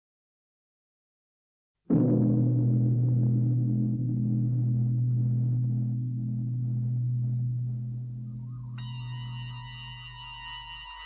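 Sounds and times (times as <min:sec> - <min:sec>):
large bell ringing: 0:02.7 - 0:11.0.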